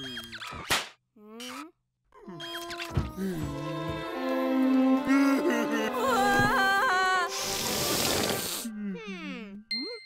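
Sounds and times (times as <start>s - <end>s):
background music: 3.2s - 8.6s
burst of hiss: 7.3s - 8.6s.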